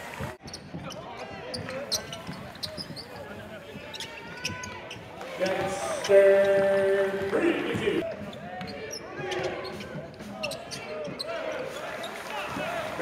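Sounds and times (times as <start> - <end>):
crowd voices and chatter: 0.0 - 13.0.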